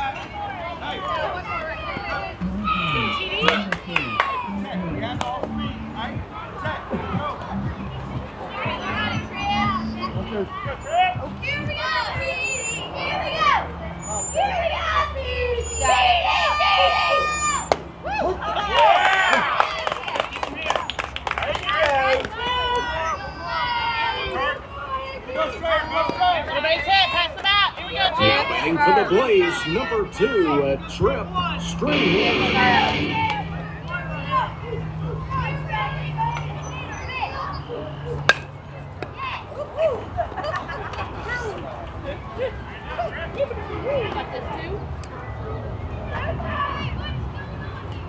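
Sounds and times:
spectators calling and shouting: 0:00.0 - 0:48.0
children shouting and cheering: 0:07.6 - 0:20.2, 0:31.9 - 0:38.2, 0:45.3 - 0:48.0
bat hitting ball: 0:38.2 - 0:38.5.

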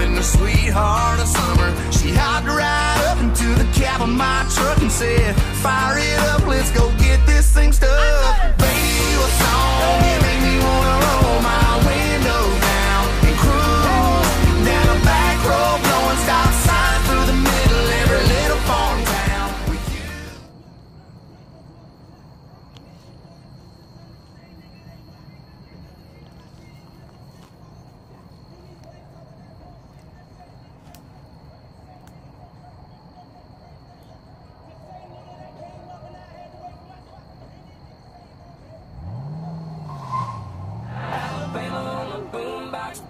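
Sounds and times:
music: 0:00.0 - 0:20.5
distant road traffic rumble: 0:00.0 - 0:43.0.

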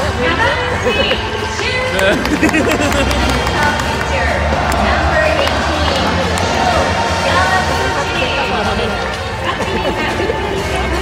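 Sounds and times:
crowd voices talking: 0:00.0 - 0:11.0.

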